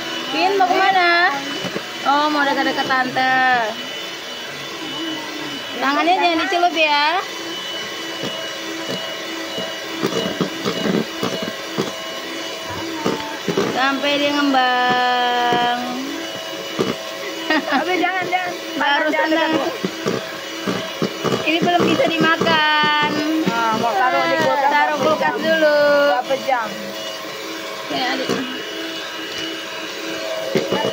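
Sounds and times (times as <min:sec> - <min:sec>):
electric hand mixer running: 0:00.0 - 0:30.9
high-pitched voice vocalising: 0:12.7 - 0:13.5.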